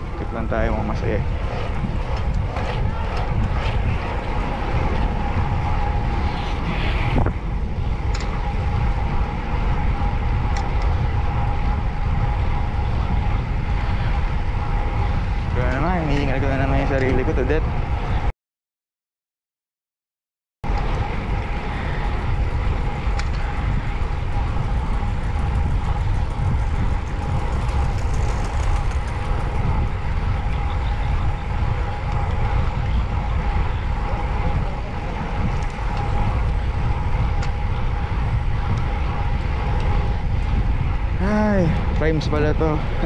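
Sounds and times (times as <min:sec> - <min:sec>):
wind buffeting microphone: 0:00.0 - 0:18.3, 0:20.6 - 0:43.0.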